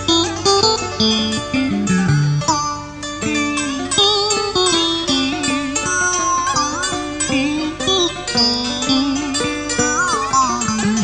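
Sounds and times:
plucked string instrument melody: 0:00.0 - 0:11.0.

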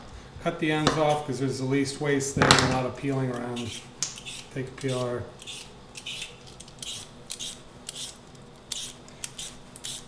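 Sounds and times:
peeler scraping potato skin: 0:03.1 - 0:10.0.

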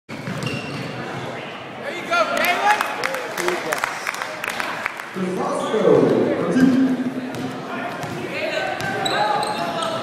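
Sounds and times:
shoes squeaking: 0:00.2 - 0:00.9, 0:08.8 - 0:10.0
basketball bouncing on hardwood: 0:08.0 - 0:08.2.

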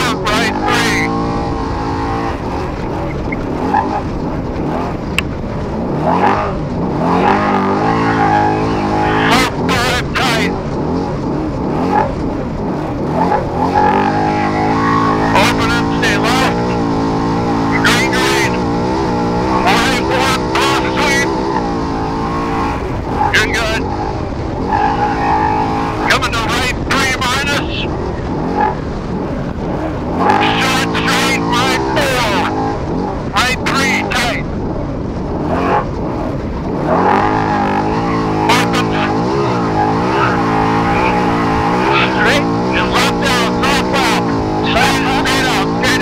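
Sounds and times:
race engine revving: 0:00.0 - 0:46.0
rough rushing noise: 0:00.0 - 0:46.0.

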